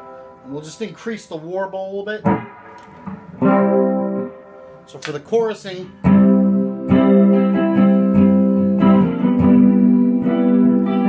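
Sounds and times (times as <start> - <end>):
electric guitar chord with chorus: 0.0 - 1.0, 2.3 - 4.9, 6.0 - 11.0.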